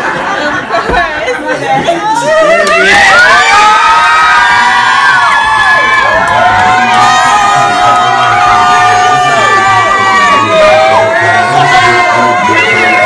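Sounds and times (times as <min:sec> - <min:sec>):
crowd cheering and screaming: 0:02.0 - 0:13.0.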